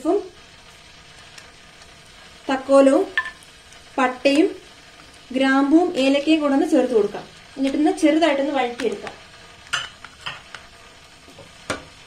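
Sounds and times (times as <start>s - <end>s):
ghee sizzling in a pan: 0.0s - 12.0s.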